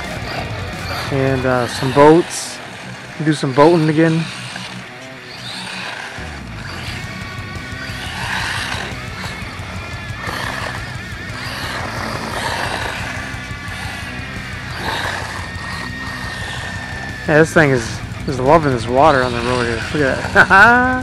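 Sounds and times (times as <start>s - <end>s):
toy truck electric motor whining: 0.0s - 21.0s.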